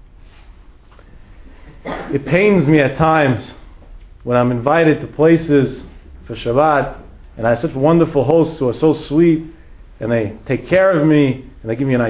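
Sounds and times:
low background hum: 0.0 - 12.0
man talking: 1.9 - 12.0.

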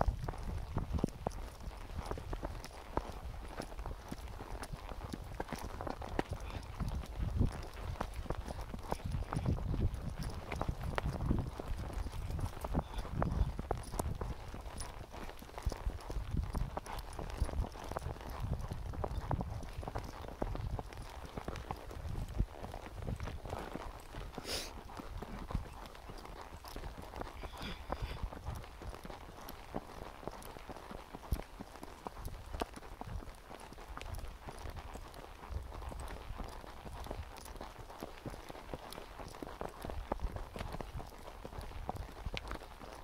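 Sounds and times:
wind rumble on microphone: 0.0 - 3.4, 4.0 - 23.6
horse hooves clip-clopping on dirt: 0.0 - 43.0.

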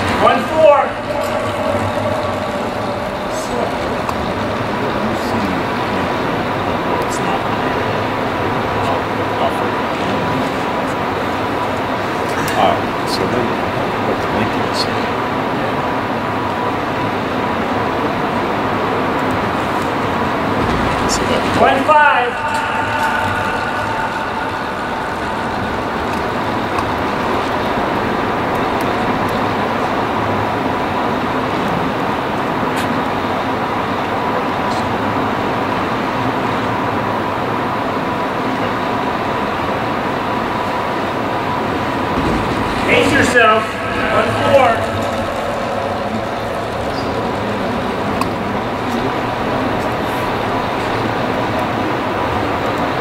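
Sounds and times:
faint steady whine: 0.0 - 53.0.

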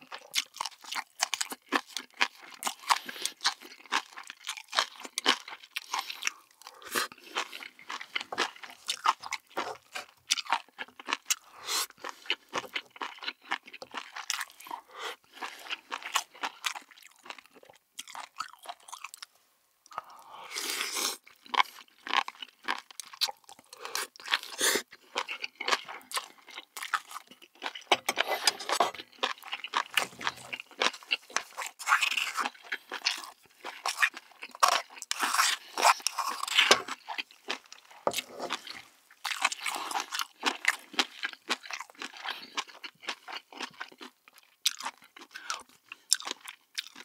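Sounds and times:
chewing and biting mouth sounds: 0.0 - 19.3, 19.9 - 47.0.

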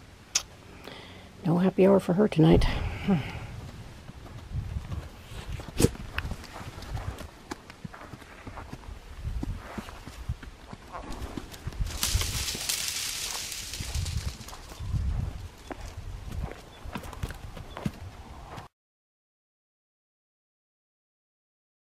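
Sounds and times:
hoofbeats on dirt: 2.6 - 18.7
rustling hiss: 11.0 - 15.6.

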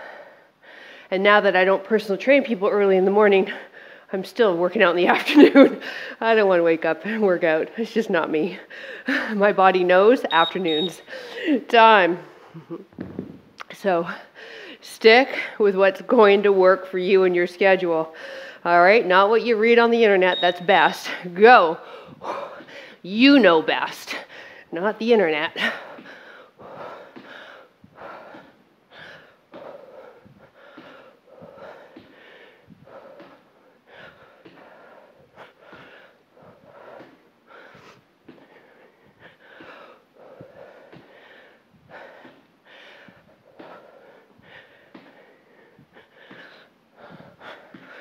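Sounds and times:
woman breathing hard: 0.0 - 1.1, 3.5 - 4.1, 5.7 - 6.2, 8.6 - 9.4, 11.0 - 11.6, 14.2 - 15.6, 18.1 - 18.6, 21.2 - 23.0, 24.2 - 24.7, 25.6 - 48.0
light thuds: 12.9 - 13.6.

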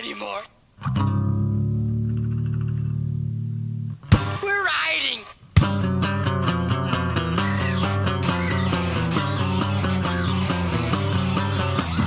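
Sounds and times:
guitar chord ringing: 0.8 - 4.3, 5.6 - 12.0
bass: 0.8 - 4.5, 5.6 - 12.0.

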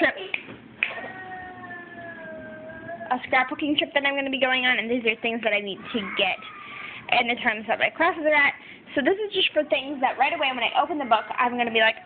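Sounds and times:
dog howling: 0.9 - 3.2.

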